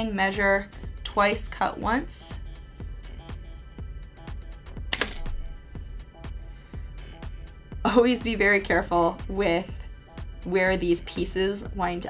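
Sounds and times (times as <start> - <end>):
background music with steady beat: 0.0 - 12.0
wire cutters snipping wire: 5.0 - 5.4.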